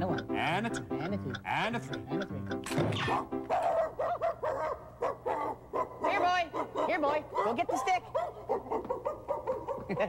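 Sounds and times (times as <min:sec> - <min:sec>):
person imitating dog barks: 0:02.2 - 0:04.0.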